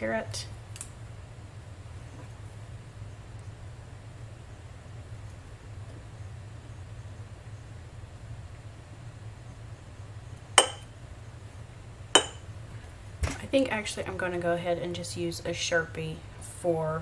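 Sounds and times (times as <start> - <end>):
low steady hum: 0.0 - 17.0
clink against glass mug: 10.6 - 10.9, 12.2 - 12.4.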